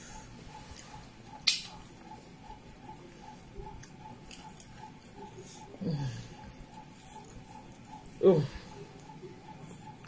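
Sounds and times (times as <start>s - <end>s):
quiet chewing: 2.8s - 10.0s.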